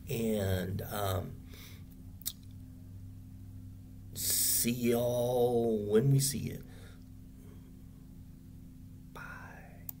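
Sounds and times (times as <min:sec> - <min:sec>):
steady low hum: 0:00.0 - 0:10.0
man's breathy whisper: 0:09.1 - 0:10.0.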